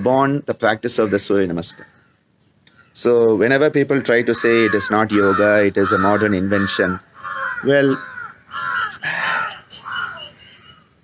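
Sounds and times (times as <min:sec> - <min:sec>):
crows cawing: 0:00.9 - 0:11.0.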